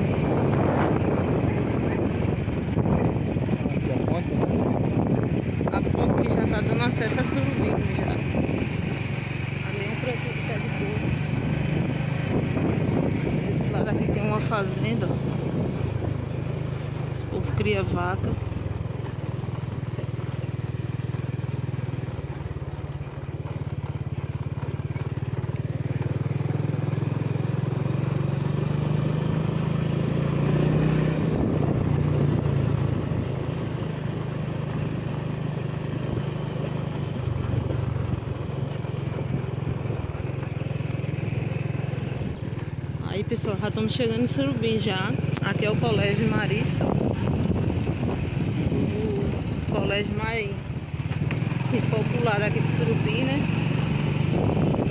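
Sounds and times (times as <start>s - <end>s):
small motorcycle engine running: 0.0s - 54.9s
wind and road noise: 0.0s - 54.9s.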